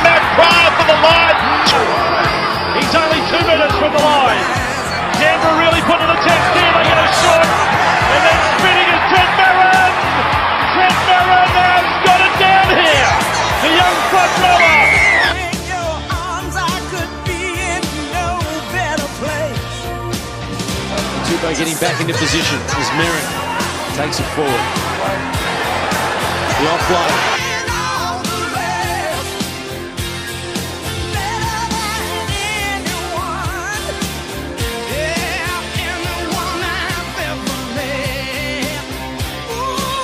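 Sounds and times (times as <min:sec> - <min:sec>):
pop song with singer and beat: 0:03.8 - 0:09.1, 0:13.1 - 0:20.9, 0:26.6 - 0:40.0.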